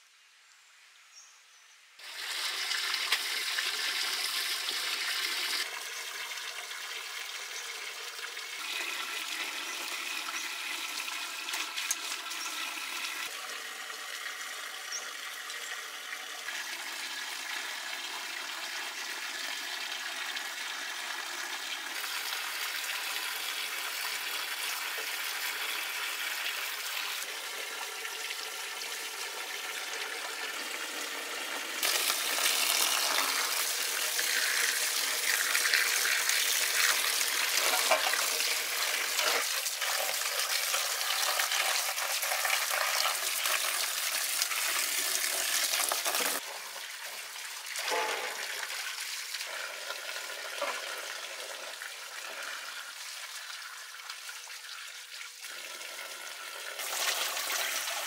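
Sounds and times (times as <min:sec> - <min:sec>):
water pouring and splashing: 0:02.0 - 0:58.0.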